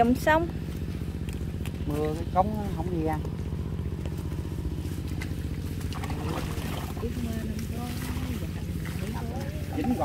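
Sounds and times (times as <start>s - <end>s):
engine-driven water pump running: 0.0s - 10.0s.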